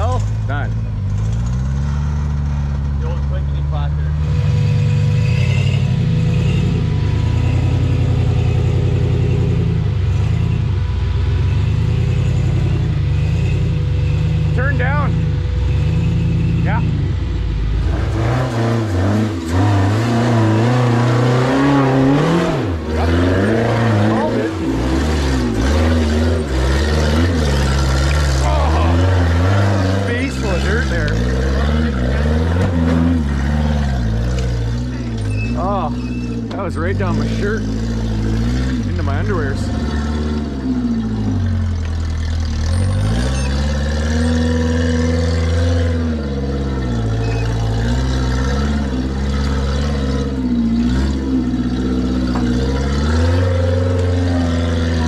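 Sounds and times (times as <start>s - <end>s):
buggy engine revving: 0.0s - 55.0s.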